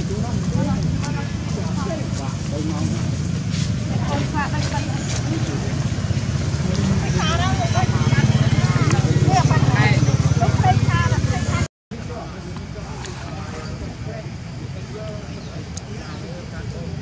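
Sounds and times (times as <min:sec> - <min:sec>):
motor engine throbbing: 0:00.0 - 0:11.7.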